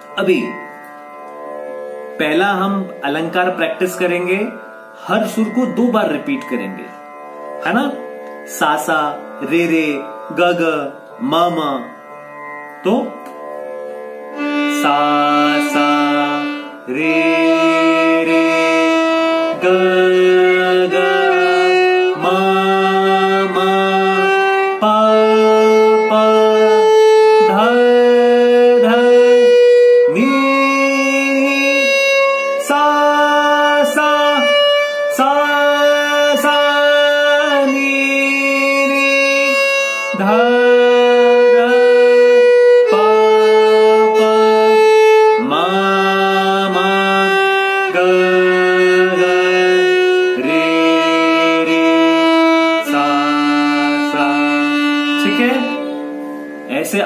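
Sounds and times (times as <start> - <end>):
violin bowed slowly: 0.0 - 57.0.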